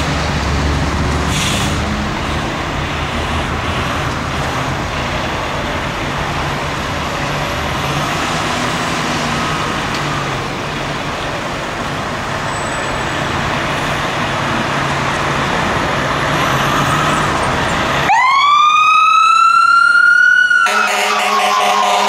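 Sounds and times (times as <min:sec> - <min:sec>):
fire truck diesel engine drone: 0:00.0 - 0:22.0.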